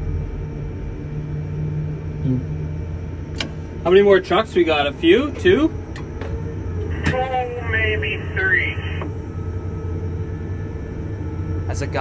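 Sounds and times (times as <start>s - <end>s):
crane cab low hum: 0.0s - 12.0s
two-way radio voice: 6.9s - 9.1s.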